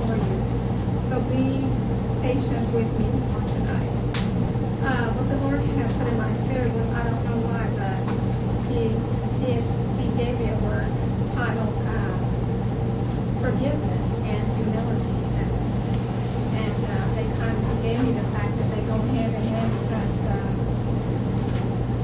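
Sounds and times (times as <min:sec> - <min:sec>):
woman speaking: 0:00.0 - 0:04.0, 0:04.8 - 0:12.4, 0:13.4 - 0:15.9, 0:16.5 - 0:20.7
loud steady low hum: 0:00.0 - 0:22.0.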